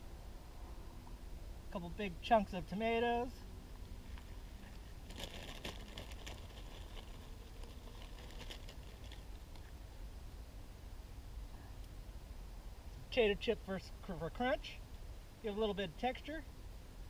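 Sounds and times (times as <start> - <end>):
low steady rumble: 0.0 - 17.0
chip bag crinkling: 5.0 - 9.7.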